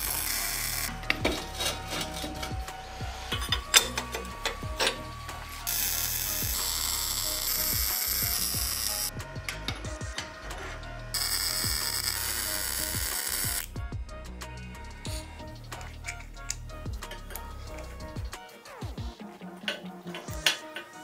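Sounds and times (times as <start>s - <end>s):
electric welding crackle: 0.0s - 9.1s, 10.6s - 13.7s
steel parts clicking: 0.1s - 2.6s, 3.3s - 5.1s, 19.7s - 21.0s.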